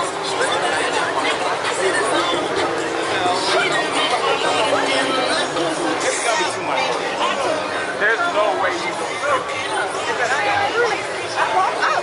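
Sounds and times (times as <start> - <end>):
street crowd chatter: 0.0 - 12.0.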